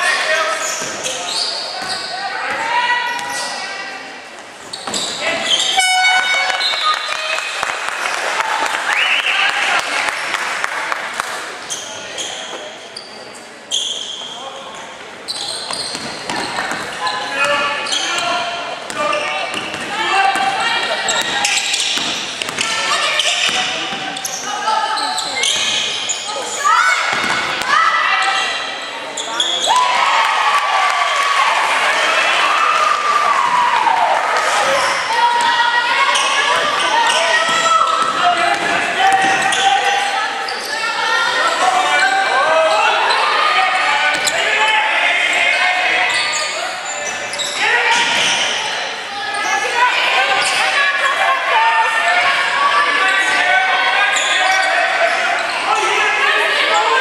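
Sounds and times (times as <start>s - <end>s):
sneakers squeaking: 0.2s - 7.2s, 11.6s - 29.9s, 34.6s - 50.8s, 53.0s - 57.0s
buzzer horn: 5.7s - 6.5s
basketball bouncing: 18.9s - 20.5s, 37.4s - 39.4s.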